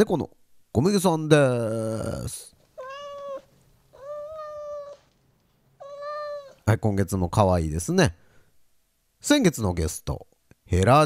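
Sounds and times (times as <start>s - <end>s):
cat meowing: 2.7s - 5.1s, 5.8s - 6.7s.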